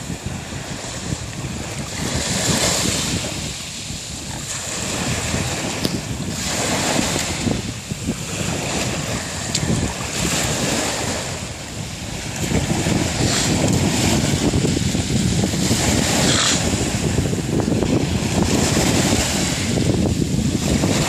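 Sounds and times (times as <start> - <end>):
waves breaking on pebble beach: 0.0 - 21.0
wind buffeting microphone: 0.0 - 21.0.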